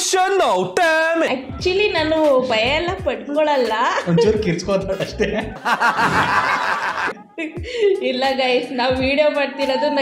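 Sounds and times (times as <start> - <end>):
man and woman laughing: 4.1 - 7.4.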